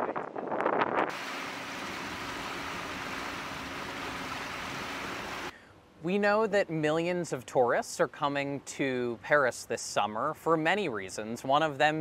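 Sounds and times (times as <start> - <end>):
wind buffeting microphone: 0.0 - 3.9
wind and water rushing: 1.0 - 5.5.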